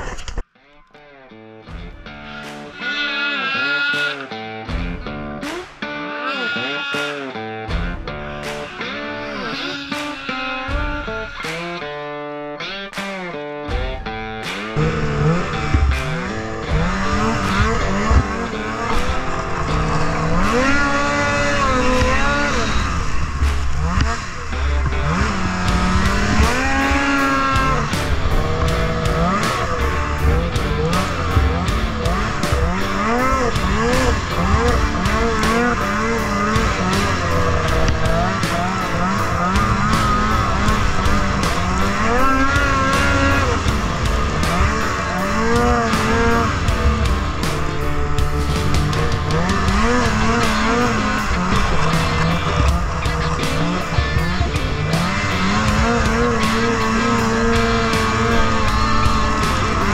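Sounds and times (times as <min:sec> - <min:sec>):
music with a steady beat: 0:01.6 - 0:59.9
snowmobile engine revving: 0:02.3 - 0:04.4, 0:07.8 - 0:13.2, 0:14.2 - 0:59.9.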